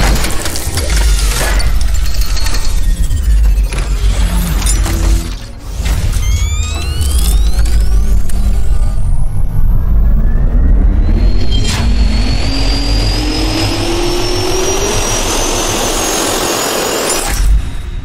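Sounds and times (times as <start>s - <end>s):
jet turbine spooling up: 6.2s - 17.1s.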